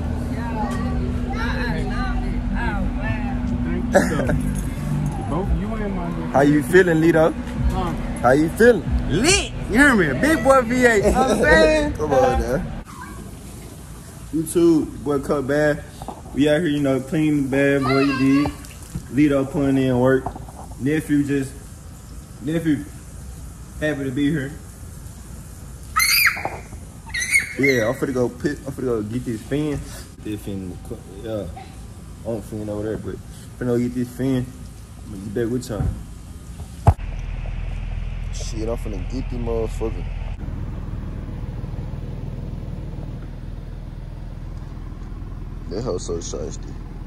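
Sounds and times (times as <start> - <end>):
voices talking: 0.0 - 23.0, 25.6 - 36.0
car engine idling: 0.0 - 26.0, 26.6 - 47.0
toddler squealing: 12.8 - 13.3, 25.9 - 28.2.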